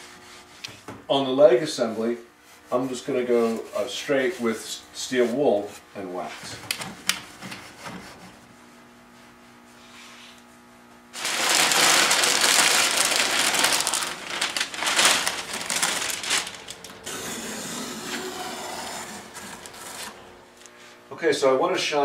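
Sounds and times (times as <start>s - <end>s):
faint steady hum: 0.0s - 22.0s
newspaper rustling and crinkling: 11.2s - 17.1s, 18.9s - 20.4s.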